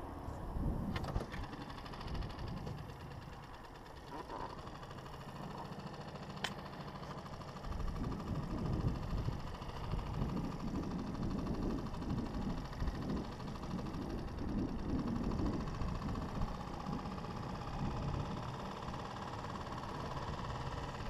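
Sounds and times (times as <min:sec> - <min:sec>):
outboard motor idling: 0:00.0 - 0:21.0.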